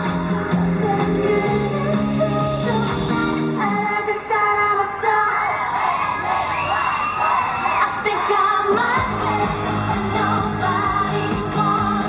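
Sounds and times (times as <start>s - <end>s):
pop song over pa system: 0.0s - 12.0s
woman singing: 0.5s - 5.6s, 7.8s - 12.0s.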